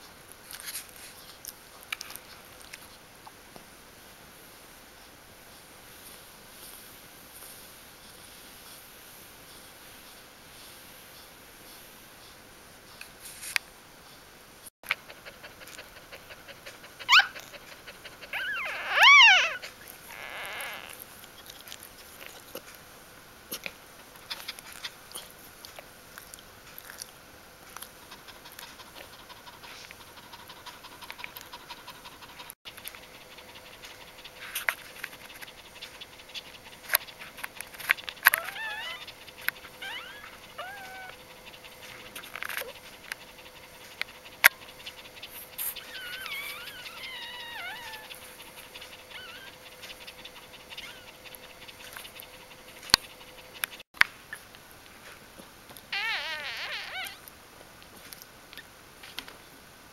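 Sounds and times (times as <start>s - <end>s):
puppy crying: 14.9s - 21.0s, 38.1s - 42.0s, 44.2s - 53.8s, 55.9s - 57.3s
puppy squealing: 15.7s - 21.5s, 38.1s - 41.2s, 45.5s - 52.2s, 55.9s - 57.2s.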